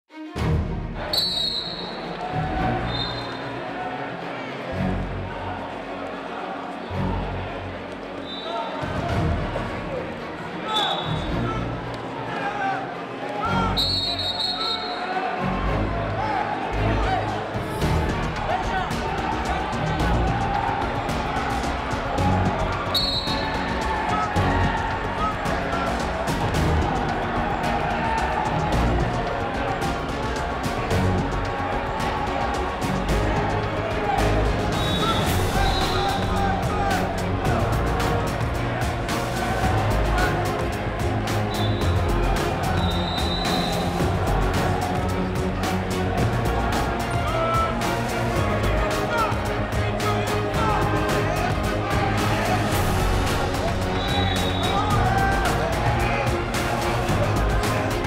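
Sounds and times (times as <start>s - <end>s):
crowd voices: 0.4s - 58.0s
referee's whistle long blast: 1.2s - 2.0s, 13.8s - 15.0s, 22.9s - 23.6s, 34.8s - 36.2s, 41.5s - 41.9s, 42.8s - 43.9s, 54.0s - 54.9s
music with low thump: 17.6s - 58.0s.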